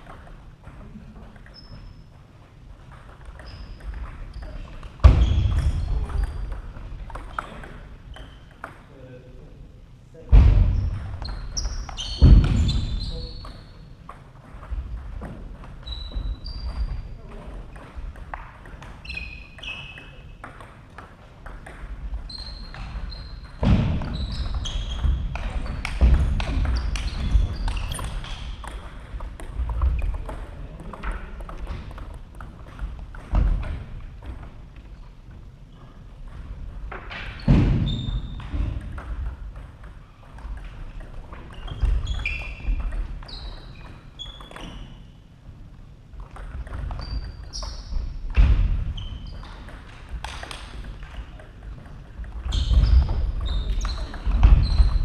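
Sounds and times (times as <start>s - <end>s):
table tennis balls ticking: 13.4s - 35.0s.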